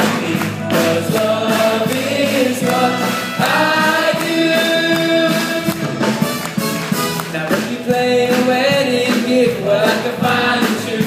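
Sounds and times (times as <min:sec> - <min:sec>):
ensemble singing in chorus: 0:00.0 - 0:06.0, 0:07.3 - 0:11.0
live band accompaniment: 0:00.0 - 0:11.0.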